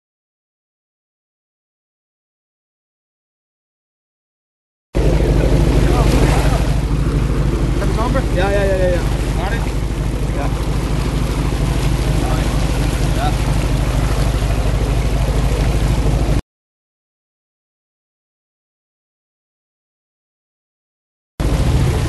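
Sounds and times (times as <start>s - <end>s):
boat engine running: 5.0s - 16.4s, 21.4s - 22.0s
water rushing along hull: 5.0s - 16.4s, 21.4s - 22.0s.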